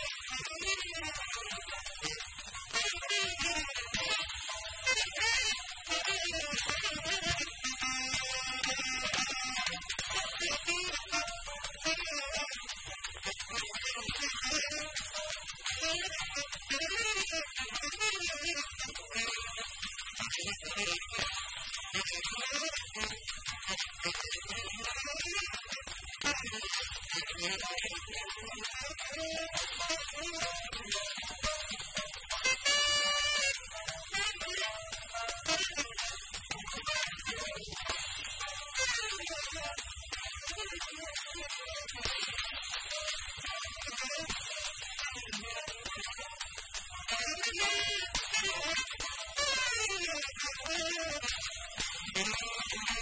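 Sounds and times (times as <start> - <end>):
drums: 0.0 - 53.0
tenor saxophone: 0.0 - 53.0.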